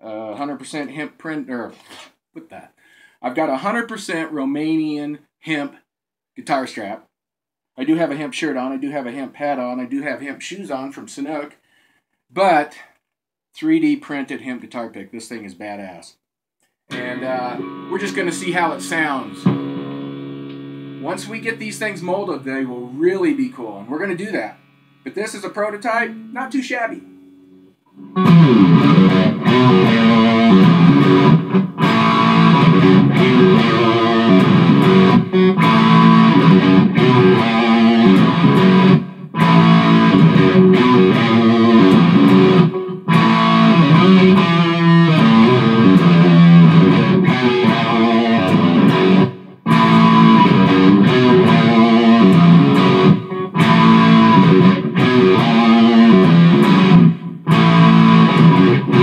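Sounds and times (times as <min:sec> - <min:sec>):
distorted electric guitar riffs: 0:16.9 - 0:59.0.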